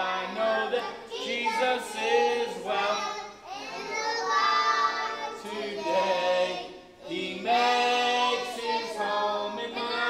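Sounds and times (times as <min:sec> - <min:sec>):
group singing a worship song: 0:00.0 - 0:10.0.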